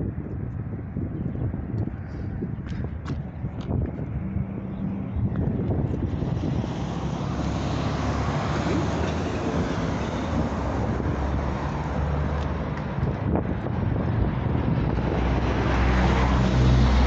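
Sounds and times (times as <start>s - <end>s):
road traffic rumble: 0.0s - 17.0s
wind buffeting microphone: 0.0s - 17.0s
vehicle passing: 3.7s - 17.0s.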